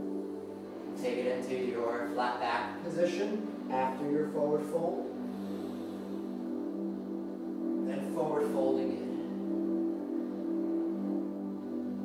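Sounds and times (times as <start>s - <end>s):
ambient music drone: 0.0s - 12.0s
person speaking: 1.0s - 5.1s.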